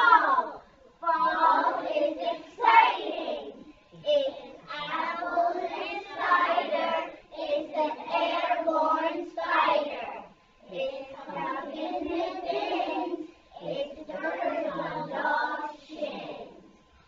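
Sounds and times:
young children singing: 0:00.0 - 0:16.8.

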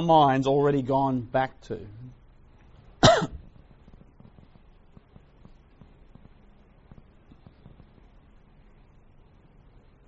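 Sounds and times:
person coughing: 0:03.0 - 0:03.5.

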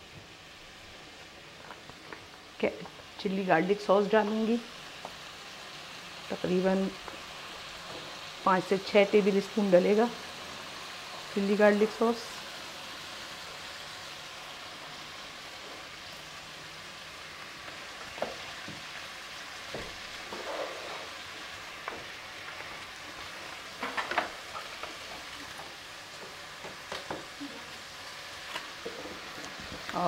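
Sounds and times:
food sizzling in a wok: 0:00.0 - 0:30.0.

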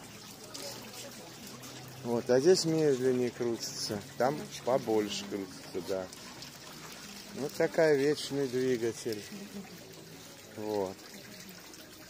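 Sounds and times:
water pouring and trickling: 0:00.0 - 0:12.0.

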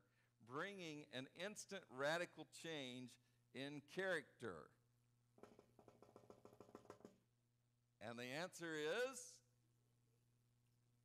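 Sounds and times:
fast taps on wood: 0:05.4 - 0:07.2.

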